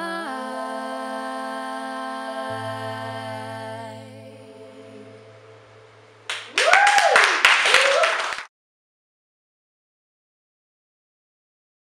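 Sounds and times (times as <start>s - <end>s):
song note: 2.8s - 6.6s
person whooping: 6.3s - 8.4s
audience clapping and cheering: 6.3s - 8.5s.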